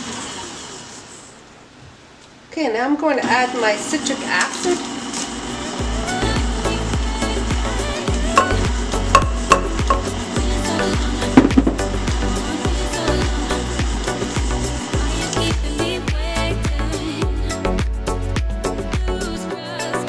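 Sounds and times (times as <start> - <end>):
stand mixer running: 3.4 - 16.6
background music with beat: 5.7 - 20.0.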